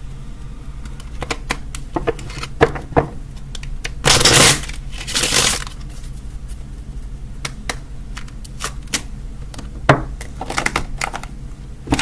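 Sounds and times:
cards riffle-shuffled: 3.6s - 6.6s.

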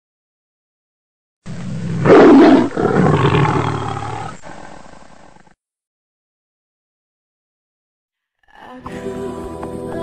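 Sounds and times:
big cat roar: 1.6s - 5.5s.

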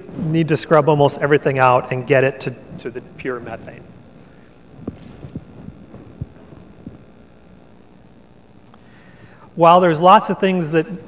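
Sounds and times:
faint steady hum: 0.0s - 11.0s
soft low thumps: 2.6s - 8.6s.

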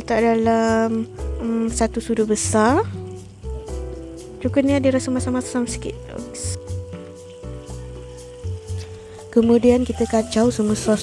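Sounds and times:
background music with bass: 0.0s - 11.0s
paste sizzling in oil: 0.0s - 11.0s.

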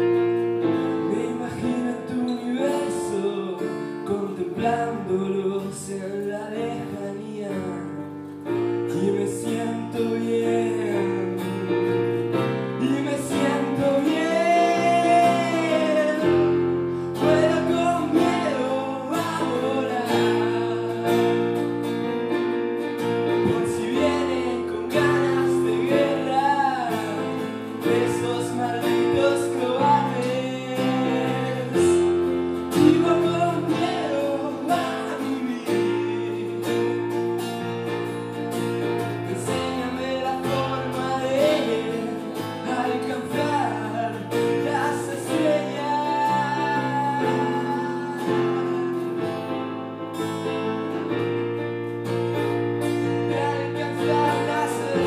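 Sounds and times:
acoustic guitar: 0.0s - 55.0s
electric keyboard chords: 0.0s - 55.0s
person singing: 0.8s - 21.9s, 23.1s - 37.6s, 39.0s - 49.7s, 52.8s - 55.0s.

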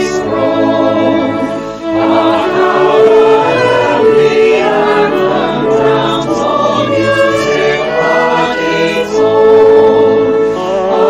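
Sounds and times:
mixed choir singing a hymn: 0.0s - 11.0s
violin accompaniment: 0.0s - 11.0s.

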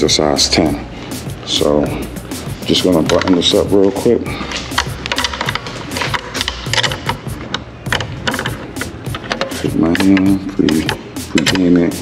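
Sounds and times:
background music: 0.0s - 12.0s
wrench clicking on screws: 4.6s - 11.9s.

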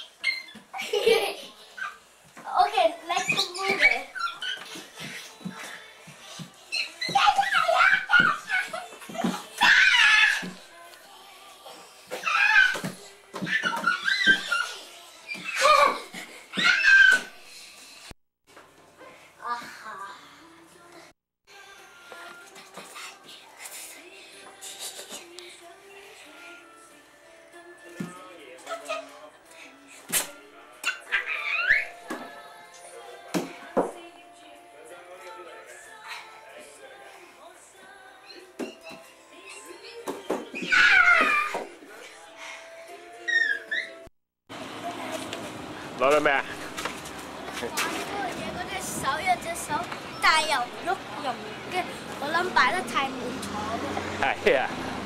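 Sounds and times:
children squealing and shrieking: 0.0s - 0.8s, 3.1s - 5.4s, 6.6s - 10.6s, 12.1s - 17.4s, 30.8s - 32.1s, 40.5s - 41.8s, 43.1s - 44.1s.

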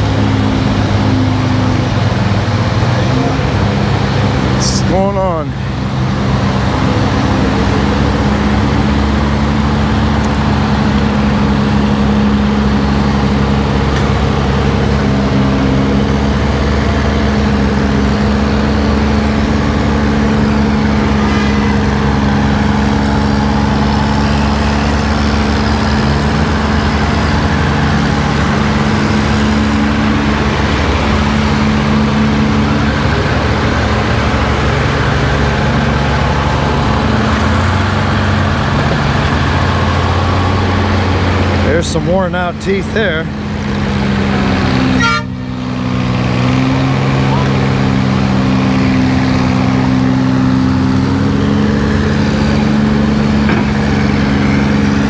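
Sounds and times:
large diesel engine running: 0.0s - 55.0s.

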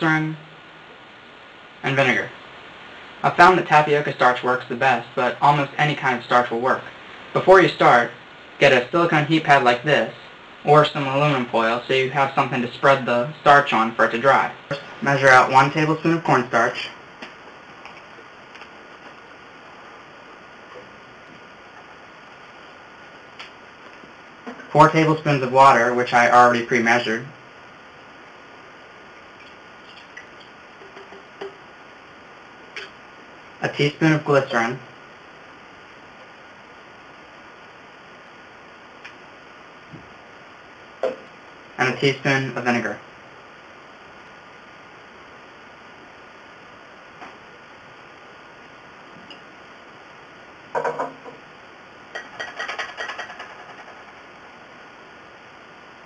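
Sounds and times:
steady background hiss: 0.0s - 56.0s
kitchen utensils clicking and tapping: 52.1s - 54.1s.

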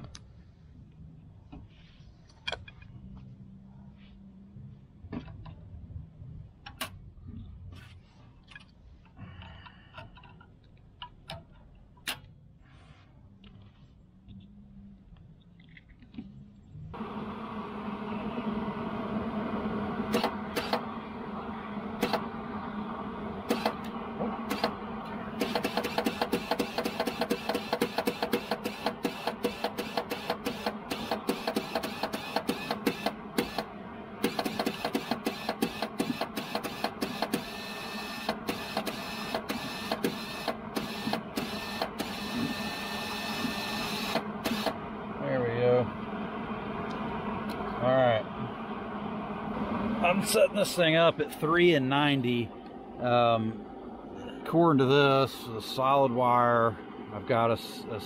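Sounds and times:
wire-feed motor humming: 16.9s - 58.0s
rapid clicking of drive rolls: 17.0s - 42.6s.

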